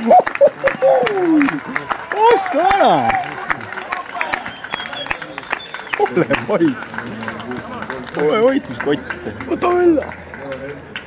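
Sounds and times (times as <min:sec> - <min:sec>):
shouting voices: 0:00.0 - 0:10.2
handclaps and applause: 0:00.0 - 0:11.0.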